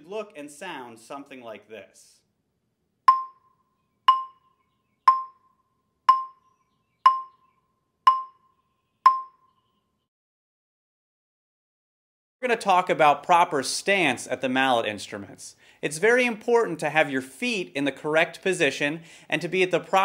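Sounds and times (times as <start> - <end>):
marimba notes struck with mallets: 3.1 - 3.5, 4.1 - 5.5, 6.1 - 7.4, 8.1 - 8.5, 9.1 - 9.4.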